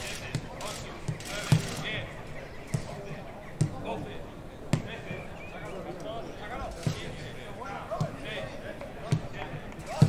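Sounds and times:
players calling out: 0.0 - 10.0.

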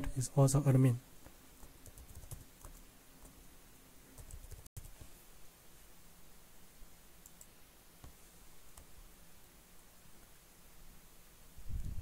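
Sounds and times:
computer keyboard or mouse clicks: 4.2 - 5.0, 7.2 - 8.9.

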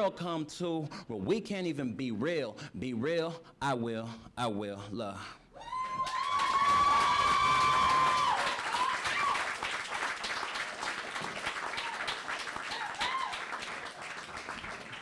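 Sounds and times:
long held whoop: 5.6 - 9.5, 11.7 - 13.5
audience applauding: 5.8 - 15.0.

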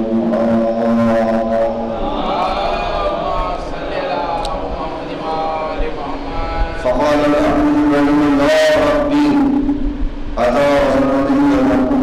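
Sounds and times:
man chanting in held notes: 0.0 - 12.0.

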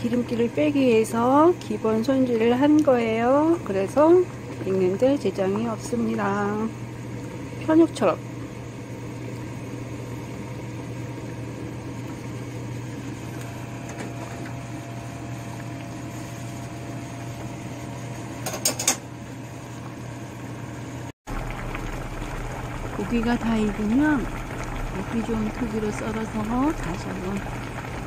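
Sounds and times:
stew simmering in a pot: 0.0 - 18.4, 19.0 - 28.0
low kitchen hum: 0.0 - 28.0.

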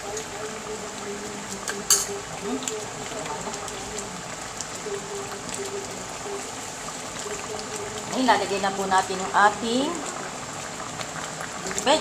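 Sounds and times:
coconut milk simmering in a frying pan: 0.0 - 12.0.

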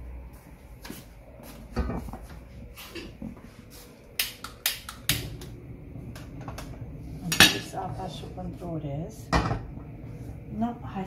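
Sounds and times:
gas burner lighting: 2.8 - 11.0.

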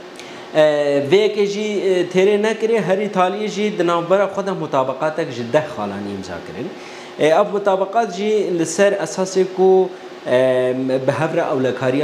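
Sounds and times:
man talking: 0.5 - 12.0.

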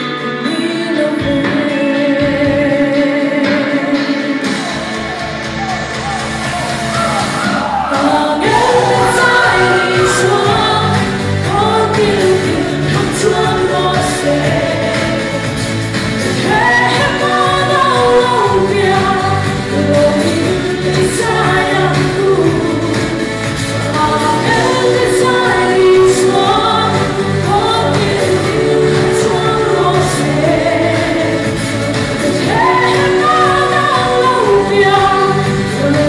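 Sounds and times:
woman singing into microphone: 0.0 - 4.9, 7.6 - 36.0
pop accompaniment with steady beat: 0.0 - 36.0.

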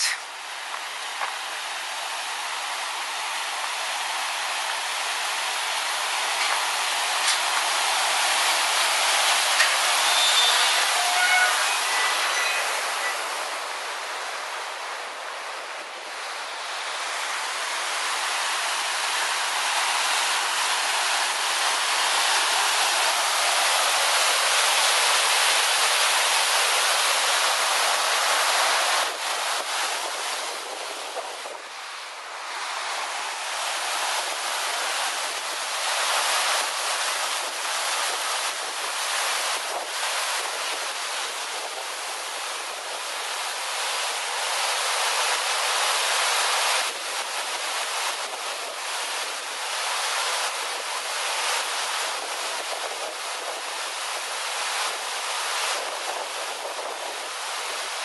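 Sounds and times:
water rushing over rocks: 0.0 - 58.0.

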